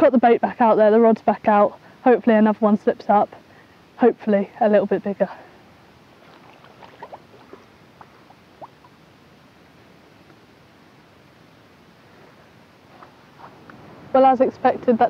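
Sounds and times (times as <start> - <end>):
shallow water sloshing: 6.1 - 9.0.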